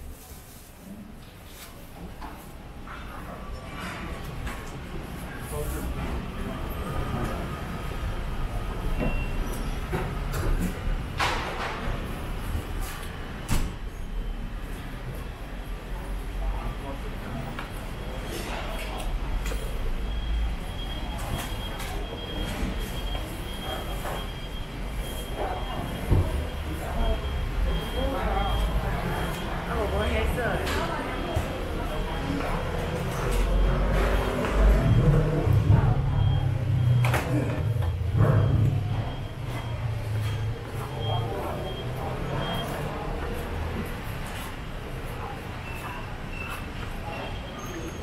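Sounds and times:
people talking: 2.9s - 10.9s, 15.0s - 48.0s.

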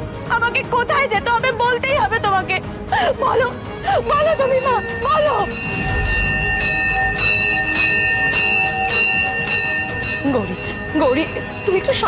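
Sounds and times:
brass bell ringing: 4.3s - 12.0s.

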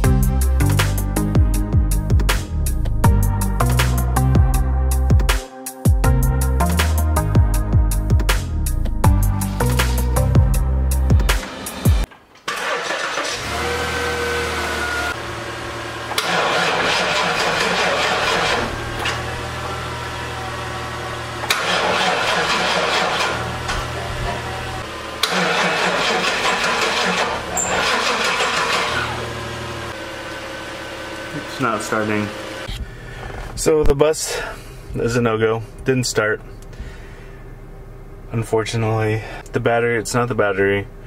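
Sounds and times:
bus engine cranking on starter: 11.3s - 15.2s, 16.0s - 20.2s, 21.4s - 30.0s
steady low hum: 32.6s - 41.0s.

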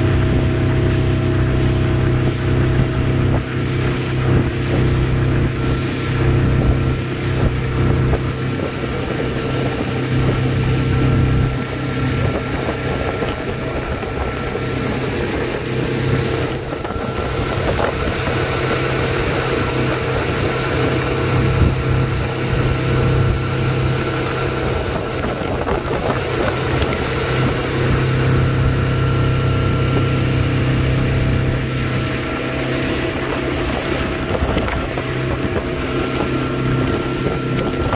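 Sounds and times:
motorboat engine drone: 0.0s - 37.9s
water rushing along hull: 0.0s - 37.9s
wind buffeting microphone: 0.0s - 37.9s.

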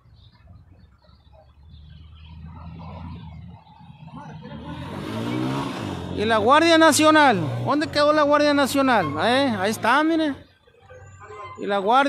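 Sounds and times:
car passing by: 1.7s - 7.9s.

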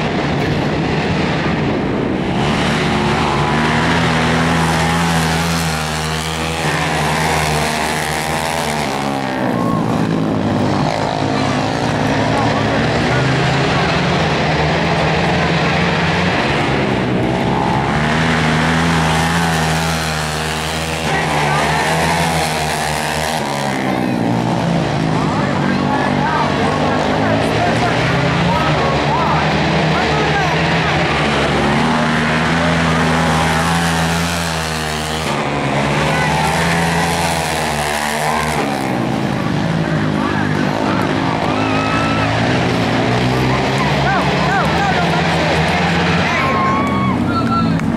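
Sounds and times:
racing quad engines revving: 0.0s - 47.9s.

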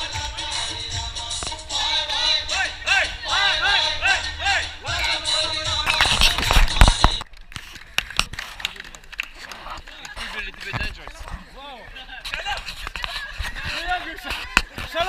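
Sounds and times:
group of people chattering: 0.0s - 7.2s, 7.9s - 15.0s.

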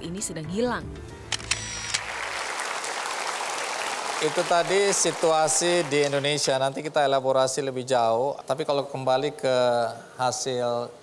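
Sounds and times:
background music: 0.0s - 6.5s
studio audience applauding: 1.6s - 6.8s.

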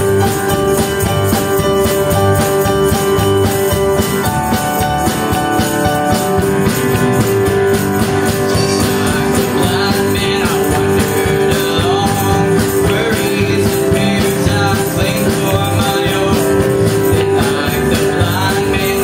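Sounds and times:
bass guitar: 0.0s - 19.0s
strummed acoustic guitars: 0.0s - 19.0s
tambourine beat: 0.0s - 19.0s.

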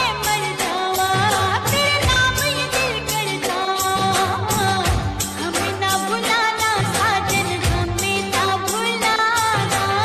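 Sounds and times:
pop song with singing: 0.0s - 10.0s.

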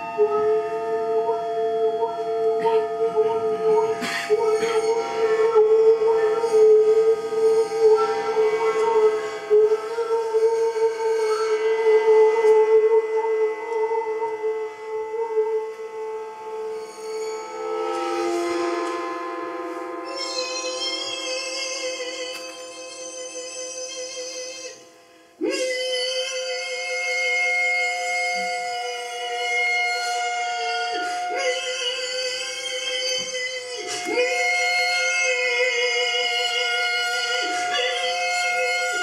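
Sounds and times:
high shimmering overtones: 0.0s - 25.6s
experimental music with held tones: 0.0s - 39.0s.

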